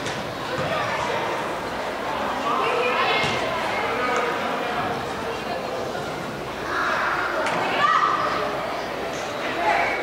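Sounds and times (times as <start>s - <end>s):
girls calling and shouting: 6.7s - 8.6s.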